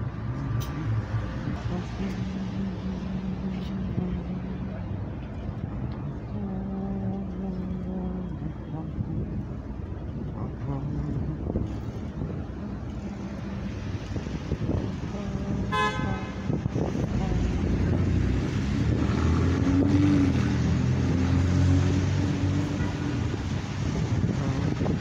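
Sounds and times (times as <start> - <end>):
city street traffic: 0.0 - 25.0
vehicle horn honking: 15.6 - 16.4.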